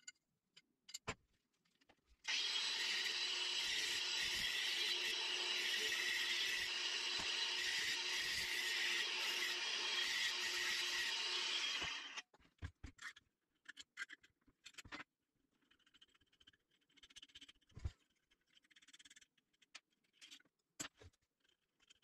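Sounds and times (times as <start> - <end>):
angle grinder cutting steel: 2.3 - 12.2.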